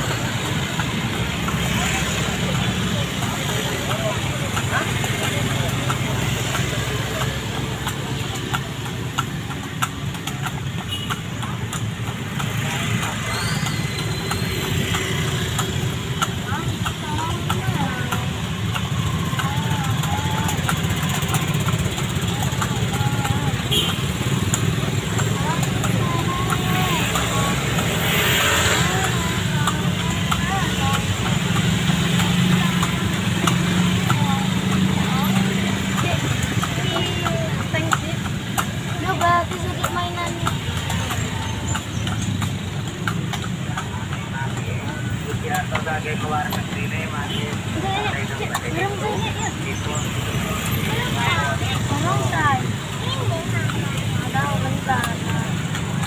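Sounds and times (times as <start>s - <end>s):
background voices: 0.0s - 56.0s
motorcycle engines humming: 0.0s - 56.0s.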